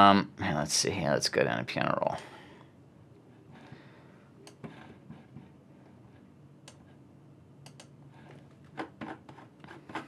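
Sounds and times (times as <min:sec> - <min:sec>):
computer mouse clicks: 0:04.4 - 0:04.8, 0:06.6 - 0:06.9, 0:07.6 - 0:07.9.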